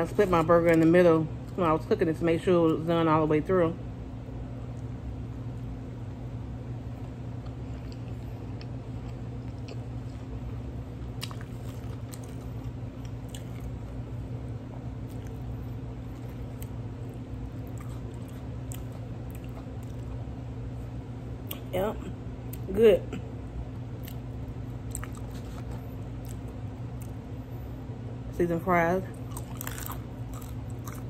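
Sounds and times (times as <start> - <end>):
air fryer humming: 0.0 - 31.0
person chewing: 7.0 - 14.0, 15.0 - 20.3, 24.0 - 27.2, 29.2 - 31.0.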